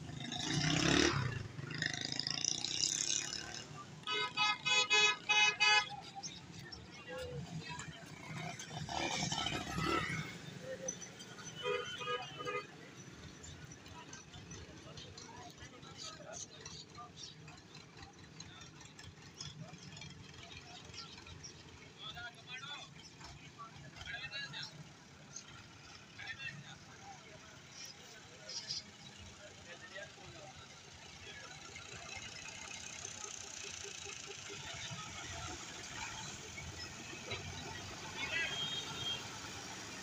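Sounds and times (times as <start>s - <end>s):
motorcycle engines: 0.0s - 40.0s
tractor diesel engine running: 12.3s - 23.9s, 27.6s - 40.0s.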